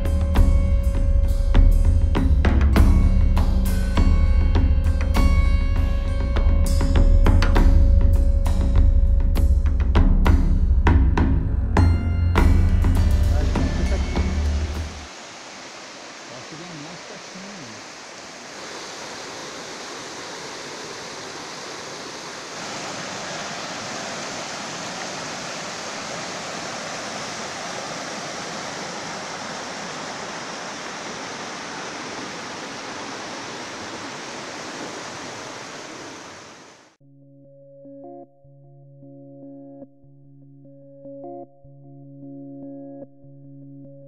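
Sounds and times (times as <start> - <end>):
music: 0.0 - 15.1, 37.0 - 44.0
stream rushing over stones: 13.3 - 37.0.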